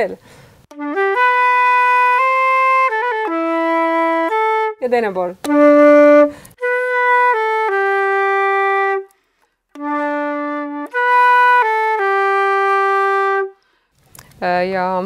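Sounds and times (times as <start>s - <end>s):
woman's voice: 0.0s - 0.2s, 4.8s - 5.4s, 14.4s - 15.0s
flute playing: 0.7s - 9.2s, 9.8s - 13.6s.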